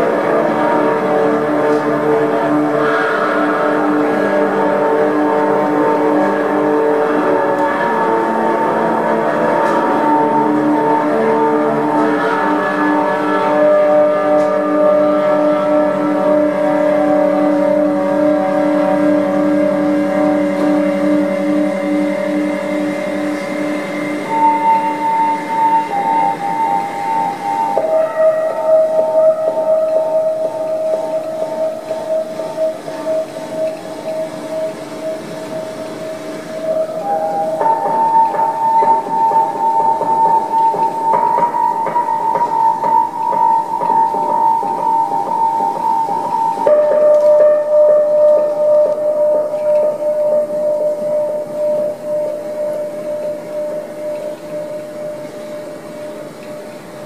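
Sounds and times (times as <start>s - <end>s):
ambient electric guitar drone: 0.0s - 56.8s.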